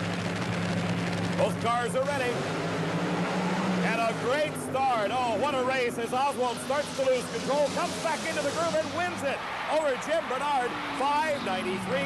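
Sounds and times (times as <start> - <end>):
dragster engines droning: 0.0 - 12.0
commentator talking: 1.4 - 2.4, 3.8 - 12.0.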